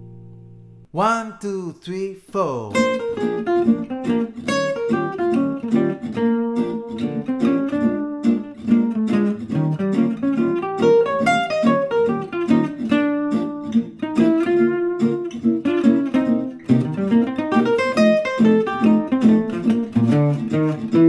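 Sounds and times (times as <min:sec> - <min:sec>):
jazz guitar playing: 0:02.7 - 0:21.0.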